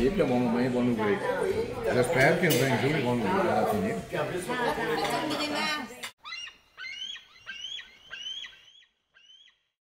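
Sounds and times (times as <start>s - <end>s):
gulls calling: 6.2s - 9.8s.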